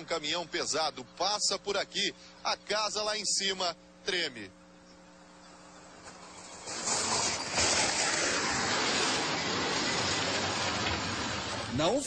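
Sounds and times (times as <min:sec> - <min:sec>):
heavy truck passing: 0:05.8 - 0:12.0.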